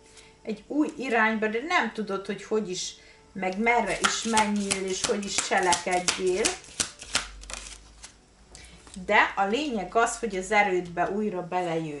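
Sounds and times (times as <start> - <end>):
cards being shuffled: 3.9 - 8.2.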